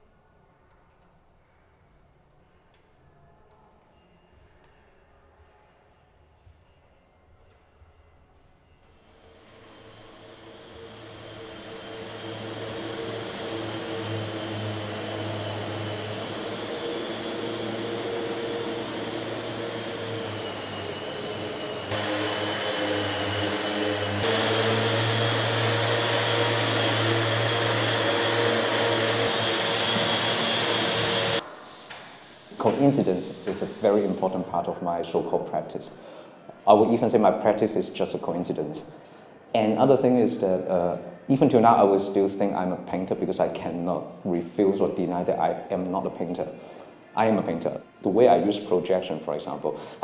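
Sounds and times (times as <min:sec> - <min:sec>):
mechanical whirring drone: 0:08.8 - 0:34.5.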